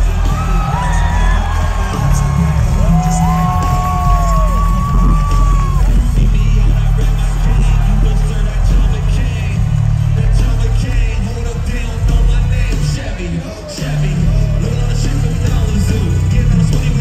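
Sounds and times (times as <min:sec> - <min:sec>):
crowd calls and whoops: 0:00.0 - 0:17.0
loud concert music with heavy bass: 0:00.0 - 0:17.0.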